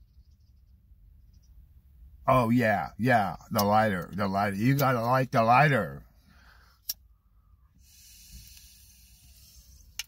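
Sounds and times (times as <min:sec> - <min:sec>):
hiss of air through pipe: 0:07.8 - 0:10.0.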